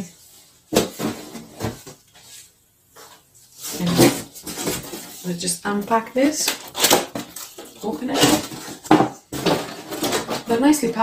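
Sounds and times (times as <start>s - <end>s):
cardboard rustling: 0.6s - 10.6s
cardboard boxes knocking and scraping: 0.7s - 2.0s, 3.7s - 5.2s, 8.0s - 10.5s.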